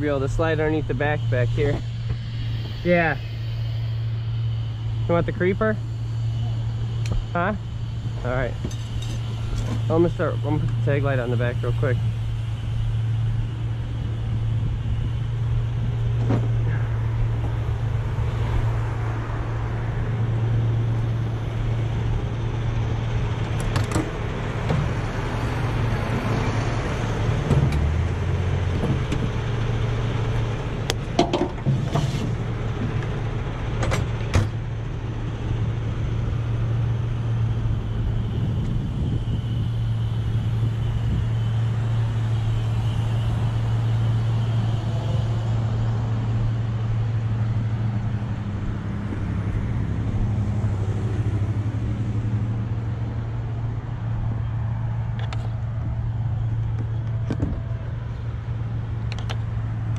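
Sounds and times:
diesel engine idling: 0:00.0 - 0:59.9
road traffic passing: 0:00.0 - 0:59.9.

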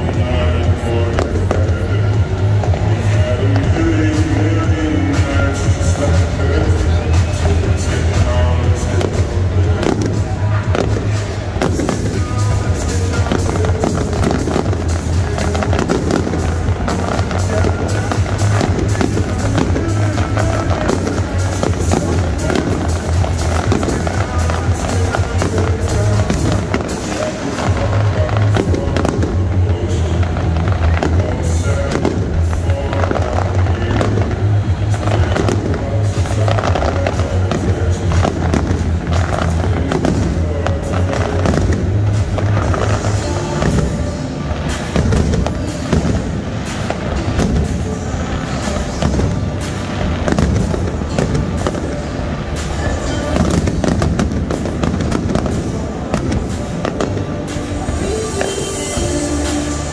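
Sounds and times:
fireworks bangs and crackles: 0:00.0 - 0:59.9
music playing: 0:00.0 - 0:59.9.

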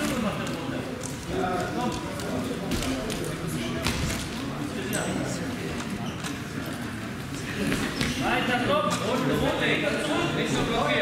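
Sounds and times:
voices calling out in a hall: 0:00.0 - 0:11.0.

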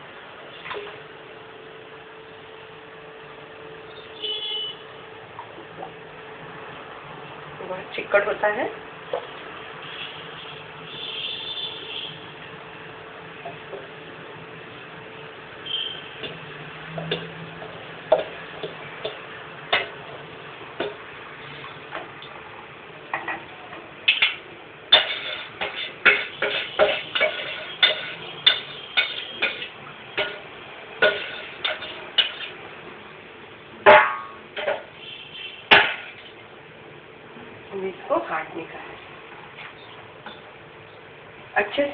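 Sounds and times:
ladle scraping and knocking a pot: 0:24.1 - 0:30.4, 0:31.0 - 0:32.6.

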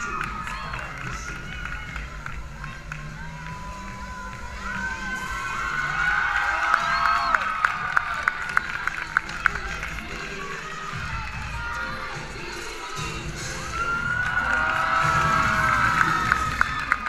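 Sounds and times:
crowd cheering and screaming: 0:00.0 - 0:17.0.

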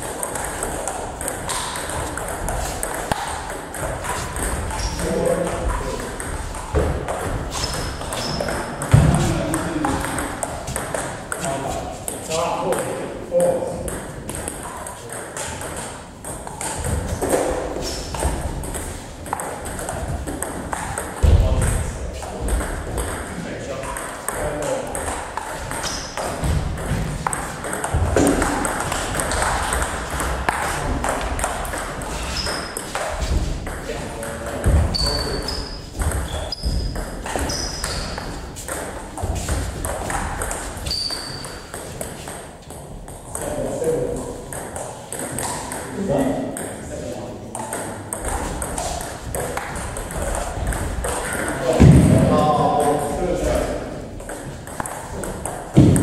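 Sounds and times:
low thumps: 0:55.7 - 0:56.0.

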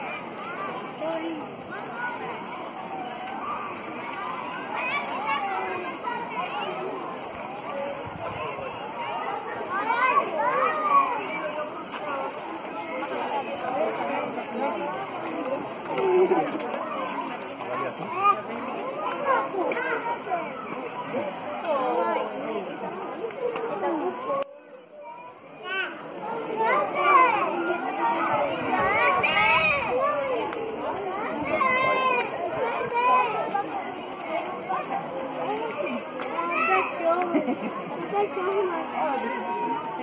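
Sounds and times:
babble of voices: 0:00.0 - 0:40.0
children talking and calling out: 0:00.0 - 0:40.0.

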